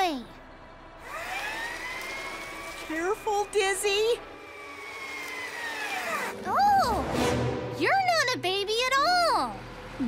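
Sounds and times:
vehicle motor whine: 0:00.4 - 0:07.7, 0:09.2 - 0:10.0.

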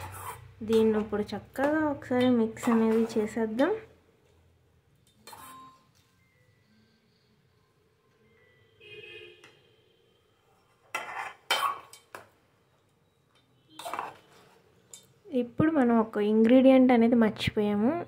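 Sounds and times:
spoon scraping metal bowl: 0:00.0 - 0:01.1, 0:02.2 - 0:03.4, 0:05.1 - 0:06.0, 0:10.6 - 0:12.2, 0:13.7 - 0:15.1.

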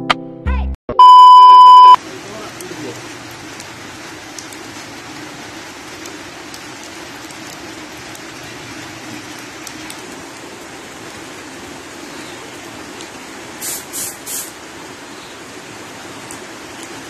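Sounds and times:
raindrops ticking: 0:01.9 - 0:17.0
light rain hissing: 0:02.0 - 0:17.0.

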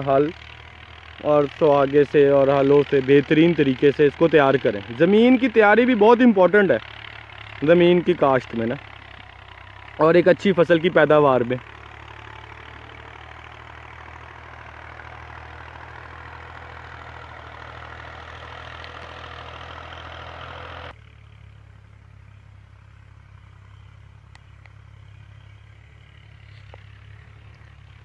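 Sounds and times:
distant tractor engine humming: 0:00.0 - 0:28.0.

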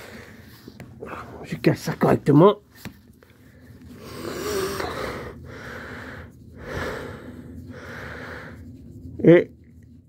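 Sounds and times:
man breathing heavily: 0:00.0 - 0:01.5, 0:03.2 - 0:08.8.

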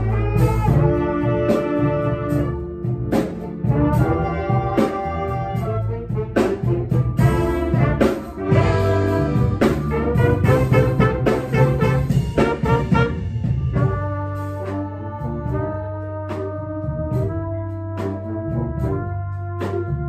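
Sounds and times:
brass section holding chords: 0:00.0 - 0:20.0
drum kit cymbal and drums: 0:00.0 - 0:20.0.

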